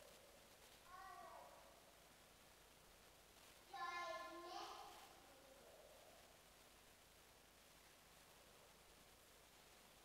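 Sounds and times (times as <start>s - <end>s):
faint high-pitched vocal sound: 0.8s - 2.0s, 3.7s - 6.3s.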